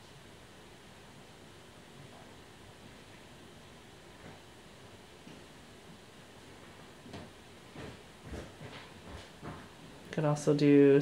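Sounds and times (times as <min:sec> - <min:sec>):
soft taps and rustles: 0:04.2 - 0:04.5, 0:06.4 - 0:10.1.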